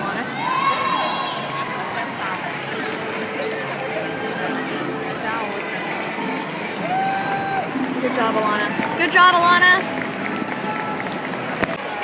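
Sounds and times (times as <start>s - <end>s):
crowd of spectators talking: 0.0s - 12.0s.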